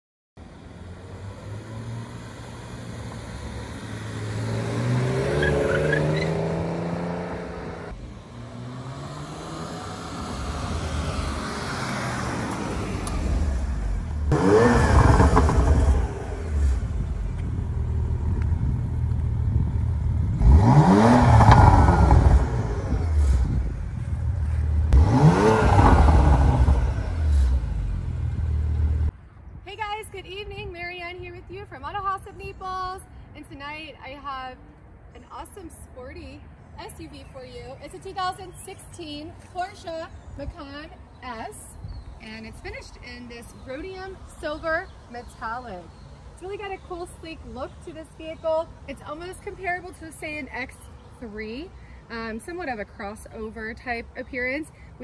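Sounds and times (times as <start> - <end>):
car engine idling and revving: 0.4 - 29.2.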